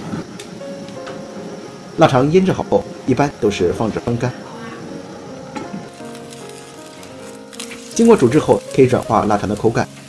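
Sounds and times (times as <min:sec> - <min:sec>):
water hissing in a wok: 0:00.0 - 0:10.0.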